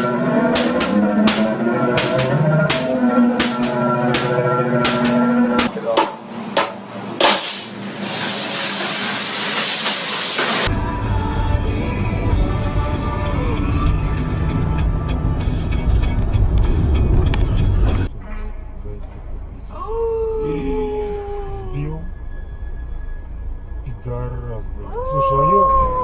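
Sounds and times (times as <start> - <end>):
loud hiss: 7.2 - 10.7
car driving low rumble: 10.7 - 26.0.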